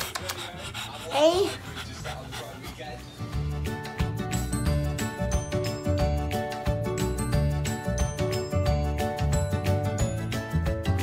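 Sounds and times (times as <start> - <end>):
dog panting: 0.0 - 3.7
background music: 0.0 - 11.0.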